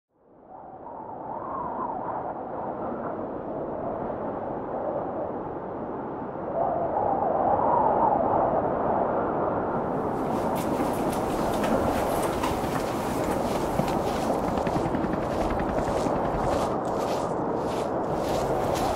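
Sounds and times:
steady rumbling noise: 0:10.0 - 0:18.9.

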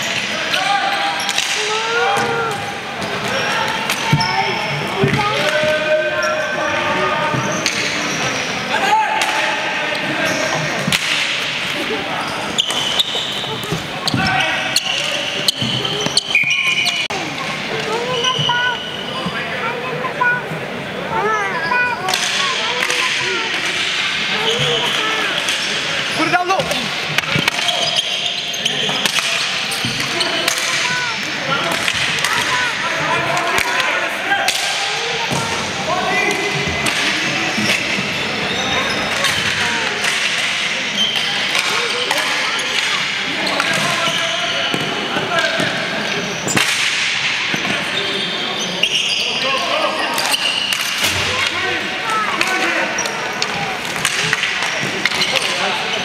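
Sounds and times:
players shouting: 0:00.0 - 0:20.3
busy arena din: 0:00.0 - 0:56.0
shoe squeaks: 0:03.4 - 0:05.0, 0:10.1 - 0:10.7, 0:12.2 - 0:17.2, 0:17.9 - 0:19.6, 0:24.4 - 0:25.5, 0:27.6 - 0:29.0, 0:37.4 - 0:39.2, 0:41.0 - 0:44.8, 0:47.6 - 0:50.8.

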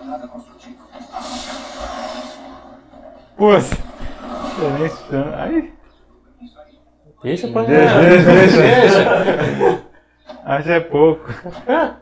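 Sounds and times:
quiet background score: 0:00.0 - 0:12.0
hissing energy blast: 0:01.0 - 0:03.0, 0:03.6 - 0:05.8.

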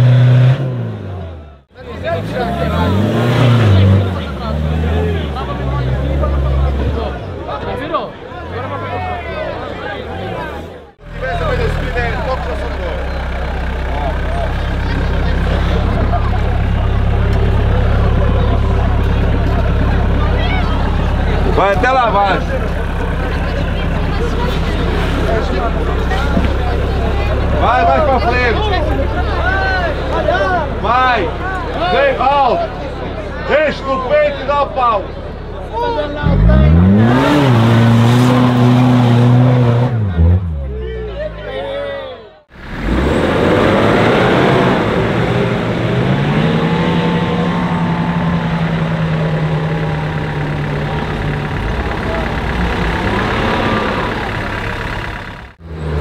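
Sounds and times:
off-road vehicle engine droning: 0:00.0 - 0:56.0
people's voices: 0:00.0 - 0:56.0.

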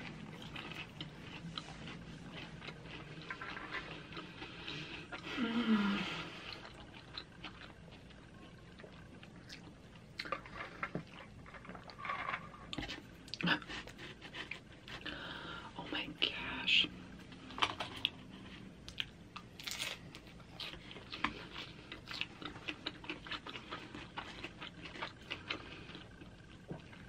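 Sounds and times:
chewing and crunching flatbread: 0:00.0 - 0:15.6, 0:16.4 - 0:27.0.

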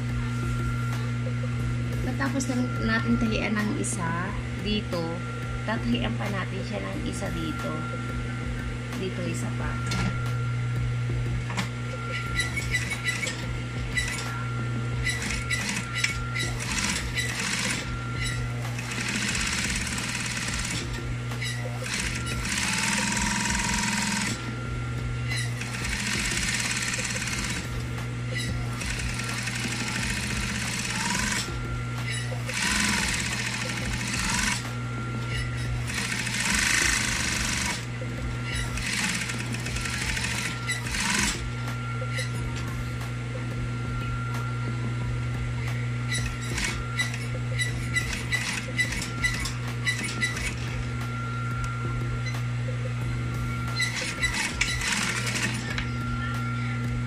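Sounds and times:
sewing machine motor hum: 0:09.7 - 0:44.5, 0:45.3 - 0:52.5, 0:53.3 - 0:57.0.

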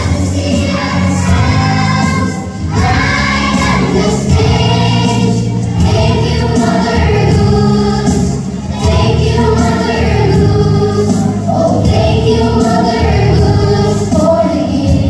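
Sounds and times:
backing music: 0:00.0 - 0:15.0
children singing: 0:00.0 - 0:15.0.

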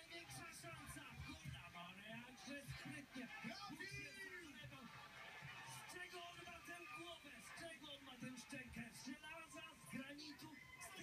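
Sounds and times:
faint television sports commentary: 0:00.0 - 0:11.0
music from television: 0:00.0 - 0:11.0.

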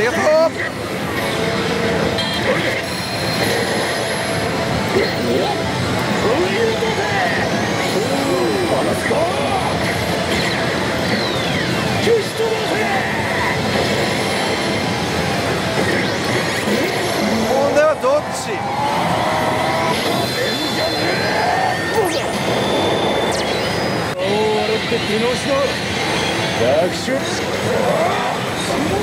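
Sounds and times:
slot machines music and effects: 0:00.0 - 0:29.0.

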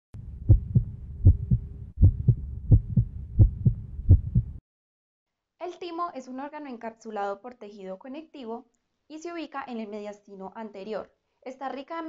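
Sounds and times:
heartbeat thumps: 0:00.2 - 0:04.6
low hum: 0:00.2 - 0:04.6.

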